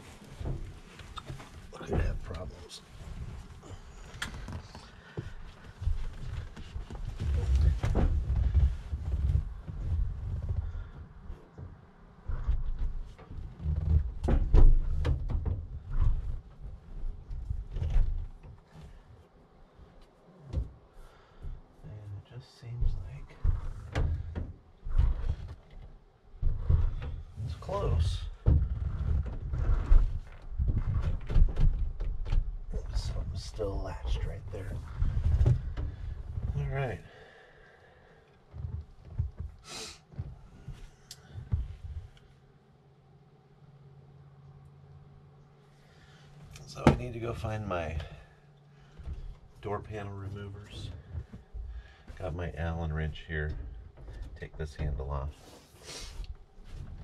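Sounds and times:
knocks and thumps inside van: 0:00.0 - 0:19.3, 0:22.7 - 0:37.6, 0:38.4 - 0:42.2, 0:45.8 - 0:55.4.

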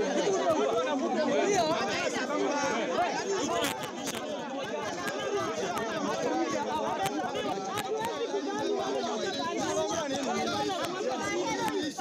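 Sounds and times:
crowd arguing: 0:00.0 - 0:12.0.

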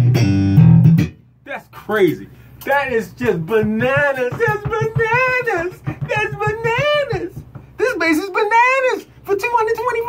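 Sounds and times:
plucked electric bass: 0:00.0 - 0:01.4, 0:02.0 - 0:07.7.

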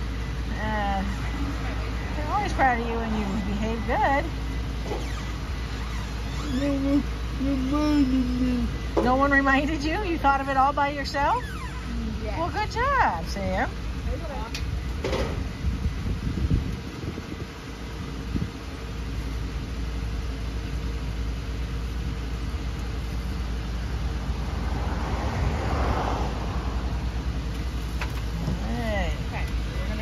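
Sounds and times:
bus engine idling: 0:00.0 - 0:30.0.

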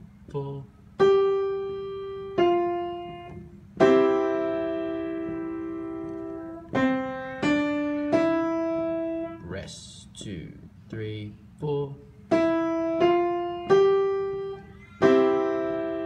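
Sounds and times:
piano single notes: 0:01.0 - 0:09.6, 0:12.3 - 0:16.0.

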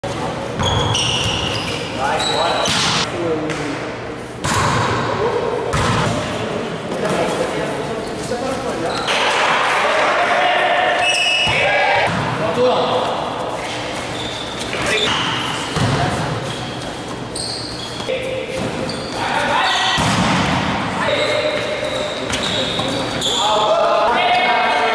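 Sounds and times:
sneakers squeaking on court: 0:00.5 - 0:03.1, 0:08.0 - 0:09.3, 0:13.6 - 0:20.0, 0:21.1 - 0:23.5
volleyball hit: 0:02.6 - 0:03.7, 0:04.4 - 0:05.1, 0:05.7 - 0:06.3, 0:19.9 - 0:20.8
volleyball being struck: 0:04.4 - 0:05.1, 0:19.9 - 0:20.8
players shouting: 0:09.1 - 0:12.1.

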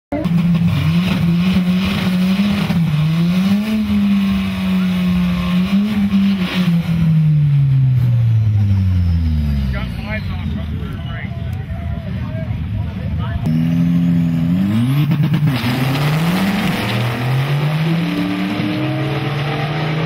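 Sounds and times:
car engine at high revs: 0:00.1 - 0:10.6, 0:13.4 - 0:20.0.

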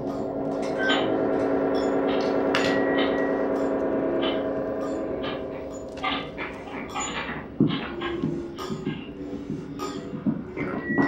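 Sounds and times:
gong-like ringing drone: 0:00.0 - 0:11.0.

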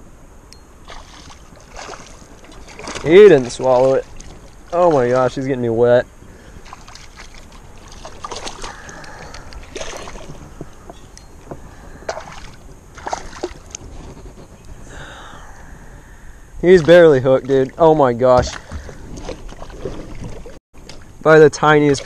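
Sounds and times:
fish splashing: 0:00.8 - 0:05.6, 0:06.2 - 0:11.0, 0:11.6 - 0:13.9, 0:16.6 - 0:21.1.

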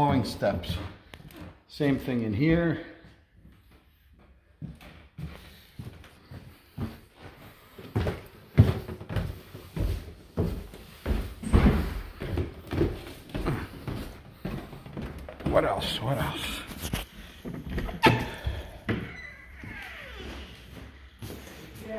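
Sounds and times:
footsteps on wooden stairs: 0:00.0 - 0:21.9.

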